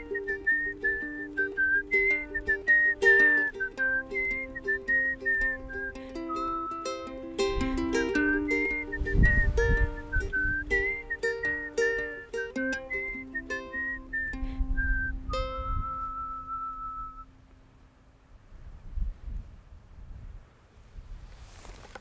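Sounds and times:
whistled melody: 0:00.0 - 0:17.3
plucked ukulele: 0:00.0 - 0:17.4
wind rumble on microphone: 0:07.4 - 0:12.1, 0:12.8 - 0:17.2, 0:18.4 - 0:22.0.

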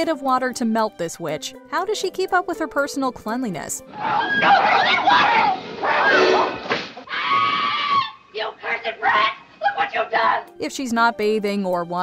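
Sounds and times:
woman speaking quickly: 0:00.0 - 0:03.8, 0:10.6 - 0:12.0
woman's shrill cry: 0:04.0 - 0:10.4.

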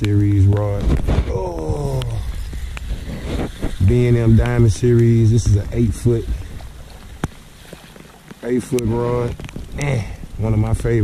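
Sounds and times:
low handling rumble: 0:00.0 - 0:11.0
rain falling on water: 0:00.0 - 0:11.0.

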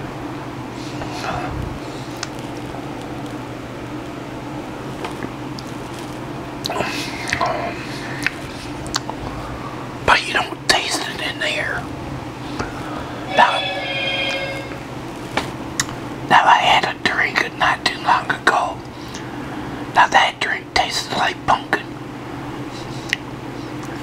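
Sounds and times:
chewing and crunching chips: 0:00.9 - 0:03.5, 0:04.9 - 0:09.4
mouth clicks and smacks: 0:02.0 - 0:03.2, 0:06.6 - 0:07.6, 0:08.2 - 0:09.3, 0:15.8 - 0:16.0, 0:22.8 - 0:24.0.

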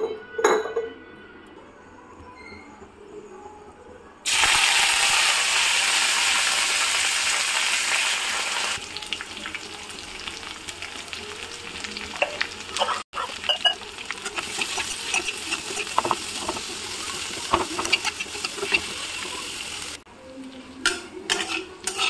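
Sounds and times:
oil sizzling and frying onions: 0:04.3 - 0:22.0.

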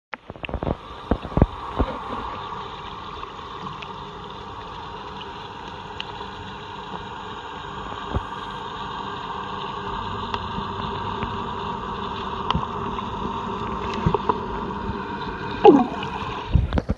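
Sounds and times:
muffled underwater water rush: 0:00.1 - 0:16.9.

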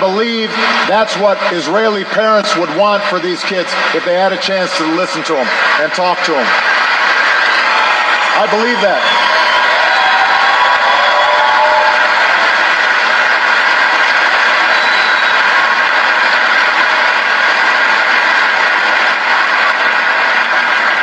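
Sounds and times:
large audience applauding: 0:00.0 - 0:21.0.

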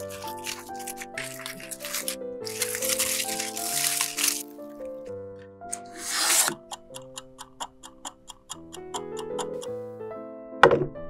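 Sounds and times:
aluminium foil crinkling: 0:00.0 - 0:05.1
background music: 0:00.0 - 0:11.0.

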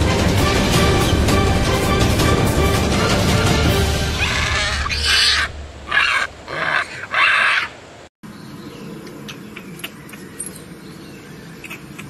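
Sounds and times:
monkey cries: 0:04.1 - 0:07.8.

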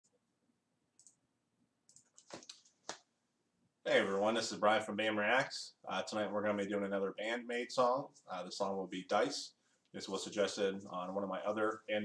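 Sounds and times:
computer mouse clicks: 0:01.0 - 0:01.2, 0:01.9 - 0:02.7.

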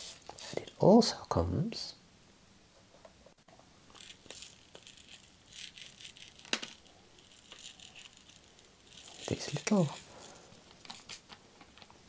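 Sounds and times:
small parts rattling and clicking: 0:03.9 - 0:12.0.

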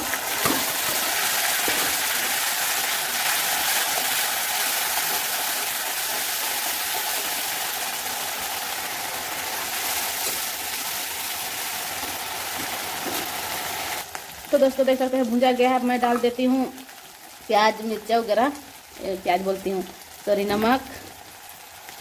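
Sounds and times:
sizzling in hot oil: 0:00.0 - 0:22.0.

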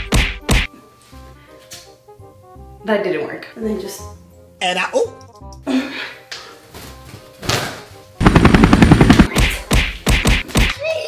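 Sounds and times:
loud gunfire-like bangs: 0:08.2 - 0:10.5.

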